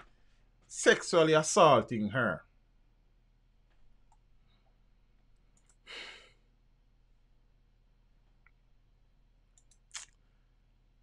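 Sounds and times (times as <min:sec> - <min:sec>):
faint clicks: 0:03.6 - 0:05.8, 0:09.5 - 0:10.2
man sighing: 0:05.8 - 0:06.5.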